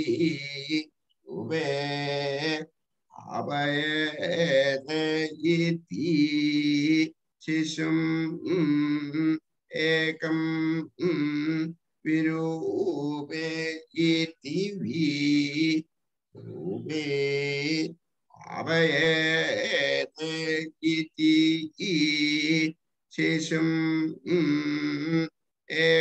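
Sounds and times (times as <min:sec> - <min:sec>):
man chanting verses: 0:00.0 - 0:26.0.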